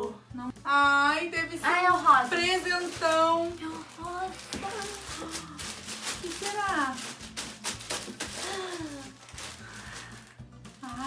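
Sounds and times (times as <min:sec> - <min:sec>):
background music: 0:00.0 - 0:11.0
plastic bag crinkling: 0:01.6 - 0:11.0.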